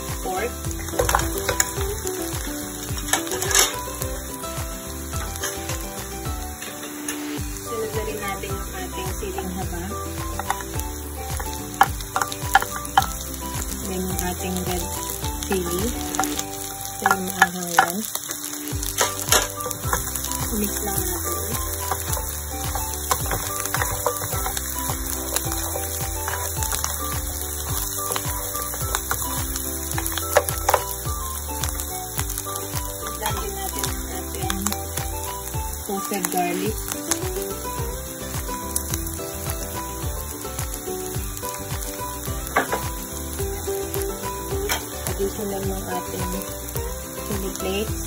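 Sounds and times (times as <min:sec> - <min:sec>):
background music: 0:00.0 - 0:48.0
meat sizzling in hot oil: 0:00.0 - 0:48.0
spatula knocking on pan: 0:10.2 - 0:13.3, 0:18.8 - 0:31.0, 0:42.5 - 0:43.0.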